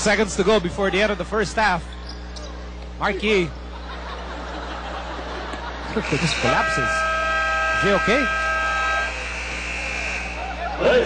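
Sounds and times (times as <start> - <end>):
murmur of arena crowd: 0.0 - 11.0
arena buzzer blaring: 5.8 - 10.8.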